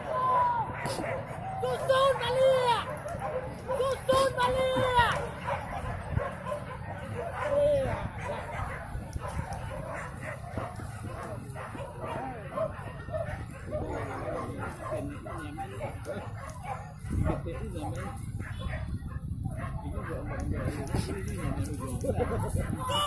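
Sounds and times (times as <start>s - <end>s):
dogs barking and yelping: 0.0s - 23.0s
people's voices: 0.0s - 23.0s.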